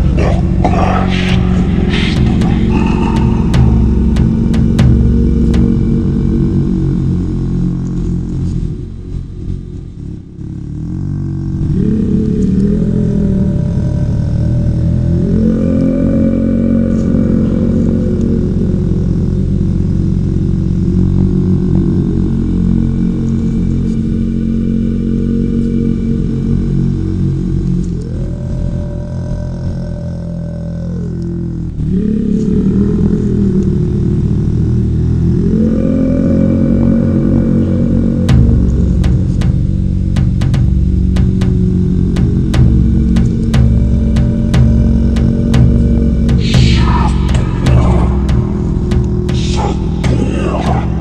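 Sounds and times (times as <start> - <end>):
ambient meditation music drone: 0.0 - 51.0.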